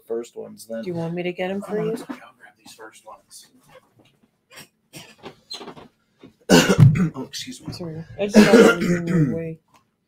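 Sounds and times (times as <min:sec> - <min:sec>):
wordless voiced sound: 0:00.0 - 0:03.6, 0:06.6 - 0:09.6
man clearing his throat: 0:01.6 - 0:02.3, 0:06.5 - 0:07.3, 0:08.3 - 0:09.4.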